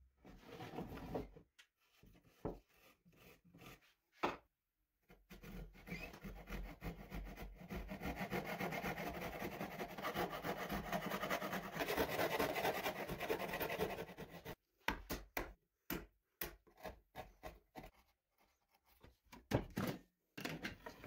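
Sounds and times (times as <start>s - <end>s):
hand saw cutting wood: 5.2s - 14.6s.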